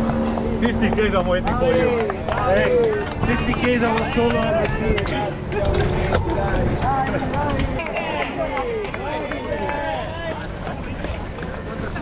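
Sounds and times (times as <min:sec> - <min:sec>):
wind rumble on microphone: 0:00.0 - 0:07.8
people calling and shouting: 0:00.0 - 0:12.0.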